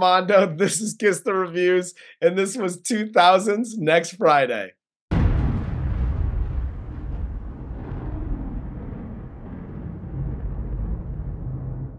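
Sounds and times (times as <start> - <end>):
rumble of burning flames: 5.1 - 11.9.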